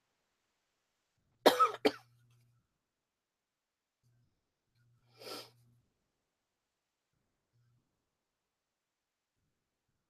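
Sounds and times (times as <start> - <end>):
person coughing: 1.5 - 2.1.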